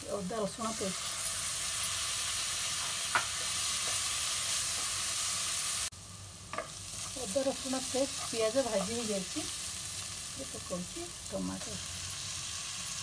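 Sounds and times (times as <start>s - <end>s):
paste sizzling in hot oil: 0.0s - 13.0s.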